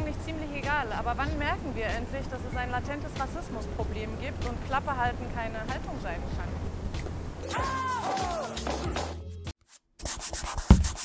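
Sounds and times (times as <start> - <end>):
music: 0.0 - 11.0
paintbrush scrubbing on paper: 9.7 - 11.0.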